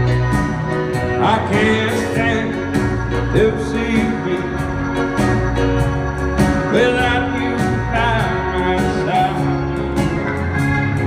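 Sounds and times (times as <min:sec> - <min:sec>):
acoustic guitar: 0:00.0 - 0:11.0
drums: 0:00.0 - 0:11.0
electric guitar: 0:00.0 - 0:11.0
man singing: 0:01.0 - 0:05.5, 0:06.4 - 0:10.2.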